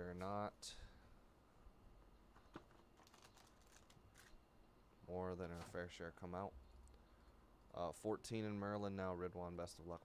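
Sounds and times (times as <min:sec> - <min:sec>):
foil card pack crinkling: 0:03.0 - 0:04.4.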